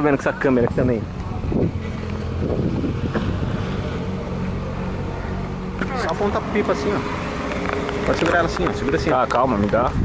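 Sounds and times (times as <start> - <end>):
engine droning: 0.6 - 10.0.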